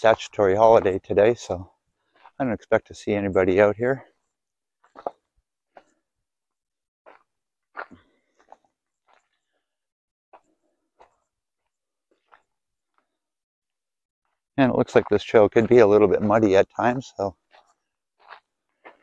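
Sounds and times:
footsteps on dry leaves: 17.5 - 19.0.

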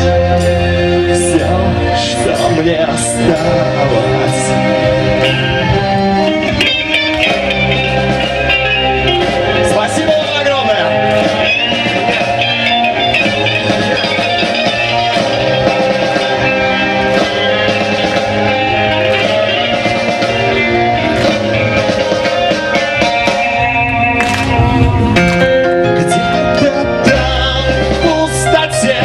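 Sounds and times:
heavy metal band playing live: 0.0 - 29.0
lead guitar melody: 0.0 - 29.0.

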